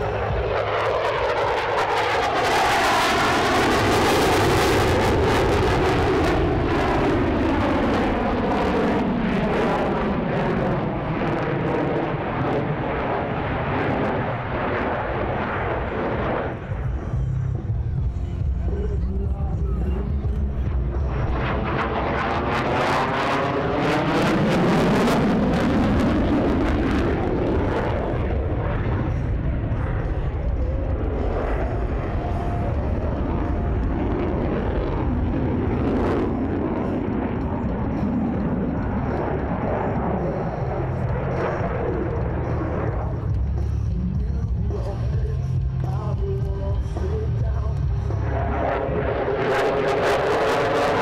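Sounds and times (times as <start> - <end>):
jet engine roaring overhead: 0.0 - 51.0.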